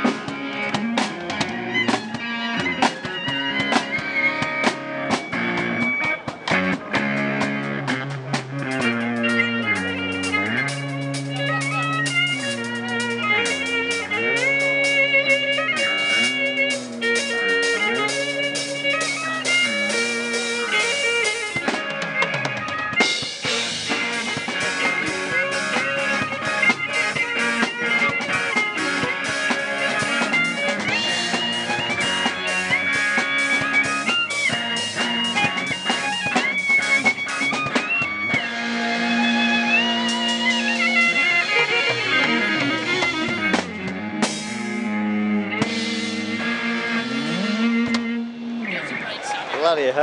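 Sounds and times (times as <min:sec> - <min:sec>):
electric violin melody: 0:00.0 - 0:49.2
drum kit: 0:00.0 - 0:50.0
electric guitar: 0:00.0 - 0:50.0.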